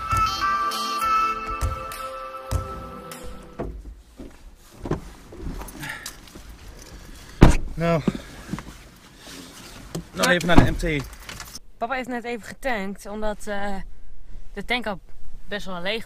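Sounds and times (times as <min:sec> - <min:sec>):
background music: 0:00.0 - 0:03.8
knocks and rustles in a car: 0:03.6 - 0:11.6.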